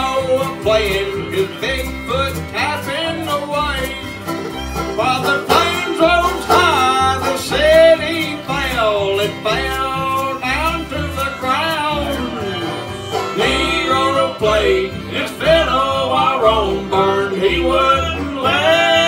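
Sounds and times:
acoustic guitar: 0.0 - 19.0
banjo: 0.0 - 19.0
fiddle: 0.0 - 19.0
upright bass: 0.0 - 19.0.

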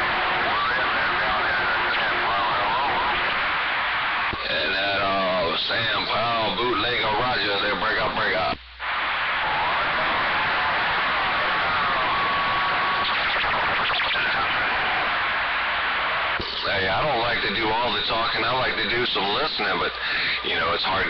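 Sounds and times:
distorted radio voice: 0.0 - 3.4, 4.3 - 8.6, 12.0 - 15.0, 16.4 - 21.0
faint garbled transmissions: 0.0 - 21.0
radio static hiss: 0.0 - 21.0.

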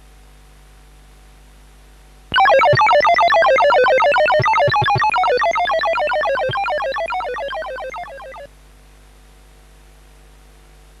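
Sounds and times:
short electronic beeps falling in pitch: 2.3 - 8.5.

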